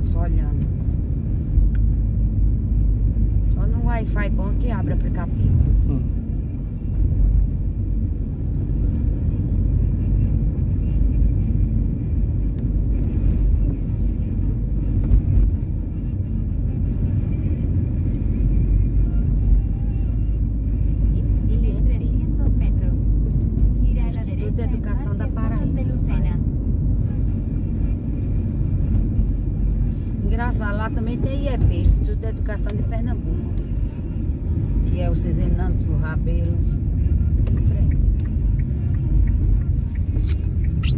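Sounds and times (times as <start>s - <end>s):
car engine and tyre rumble: 0.0s - 40.9s.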